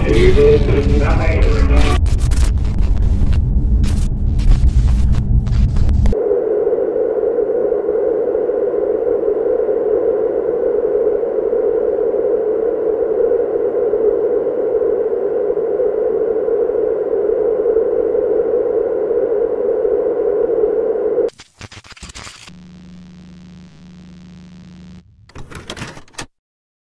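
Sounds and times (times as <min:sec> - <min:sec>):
loud rumbling: 0:00.0 - 0:10.8
electronic filtered noise drone: 0:00.0 - 0:25.4.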